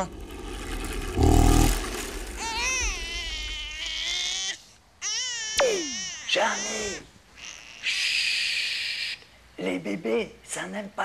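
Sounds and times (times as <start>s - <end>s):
loud vehicle noise: 0.0s - 3.6s
baby crying: 2.4s - 9.2s.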